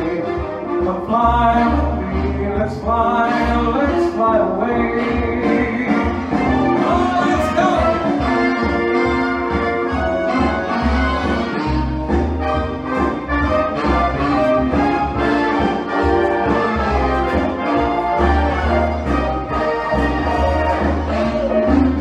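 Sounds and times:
big-band swing with brass: 0.0s - 22.0s.

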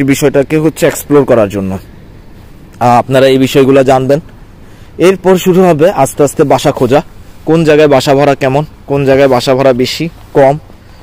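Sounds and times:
man talking: 0.0s - 2.0s, 2.7s - 10.8s.

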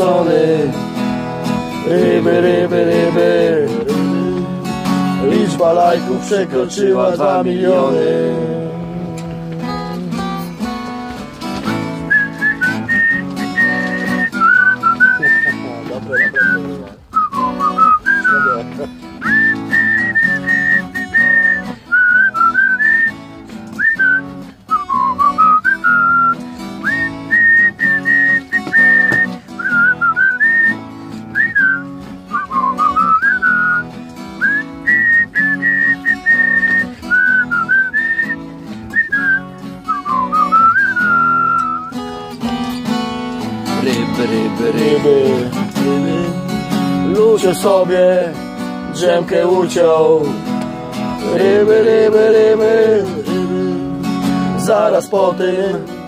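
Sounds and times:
acoustic guitar strumming: 0.0s - 56.0s
person whistling a melody: 12.0s - 23.2s, 23.8s - 42.1s.

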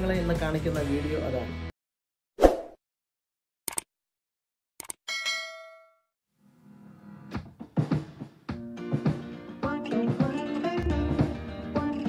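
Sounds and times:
bright bell ding: 5.1s - 6.0s.

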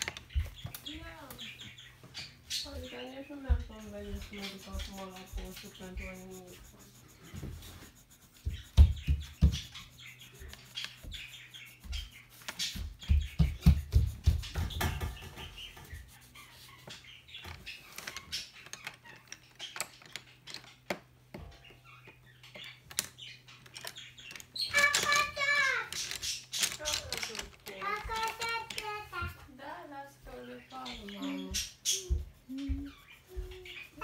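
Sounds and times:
marker scribbling on paper: 2.7s - 17.1s.

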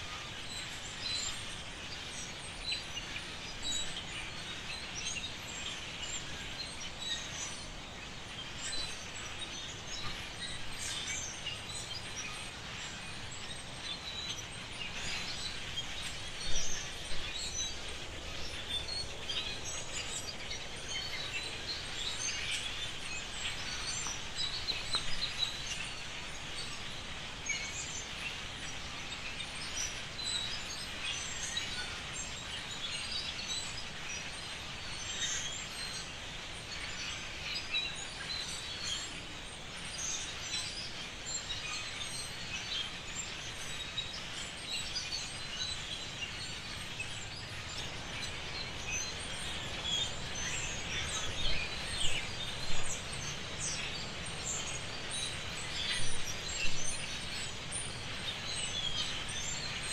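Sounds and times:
many birds chirping: 0.0s - 59.9s
steady background hiss: 0.0s - 59.9s.

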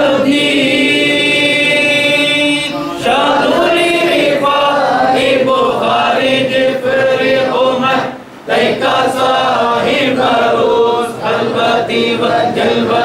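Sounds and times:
men chanting together: 0.0s - 13.0s.

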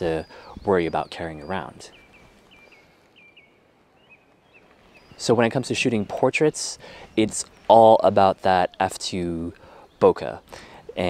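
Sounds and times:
faint outdoor ambience: 0.0s - 11.0s.

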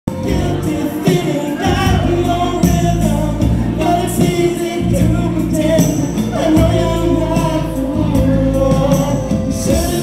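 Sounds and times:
backing music: 0.0s - 10.0s
man singing into microphone: 0.1s - 10.0s.

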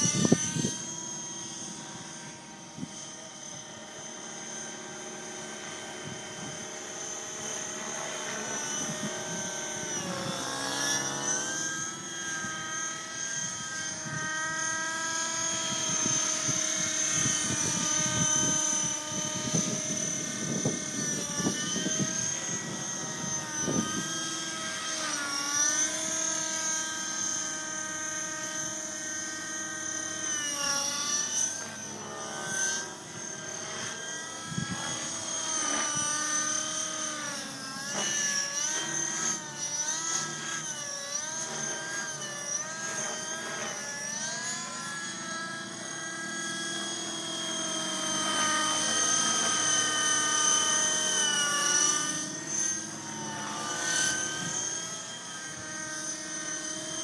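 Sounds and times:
model helicopter high whine: 0.0s - 57.0s.

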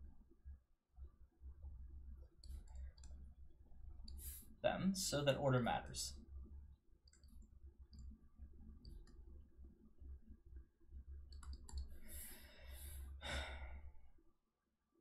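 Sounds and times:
low steady hum: 0.0s - 14.4s
person sighing: 13.2s - 13.8s.

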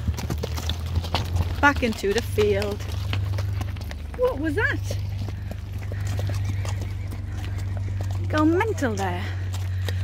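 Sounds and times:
horse hooves thudding: 0.0s - 10.0s.

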